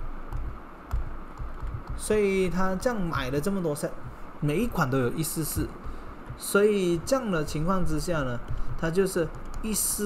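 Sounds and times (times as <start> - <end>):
steady low hum: 0.0 - 10.0
dull knocks on a desk: 0.3 - 2.0.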